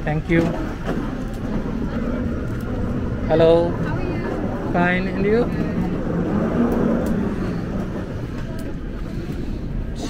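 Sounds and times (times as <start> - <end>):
airliner cabin rumble: 0.0 - 10.0.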